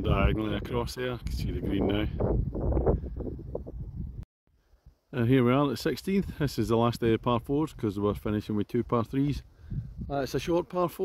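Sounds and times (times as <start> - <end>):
wind buffeting microphone: 0.0 - 4.2, 9.3 - 10.3.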